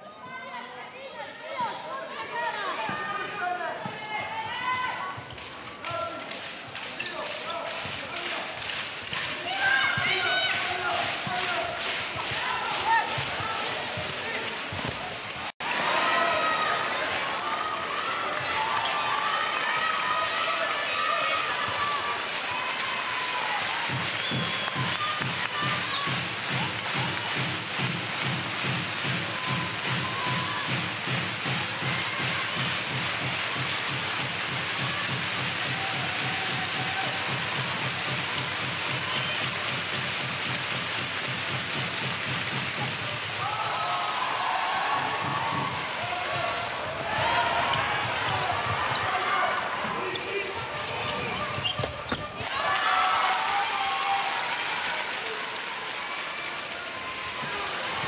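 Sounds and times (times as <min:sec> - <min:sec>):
crowd clapping: 0:05.4 - 0:49.9, 0:52.3 - 0:58.0
drum beating: 0:23.7 - 0:43.6.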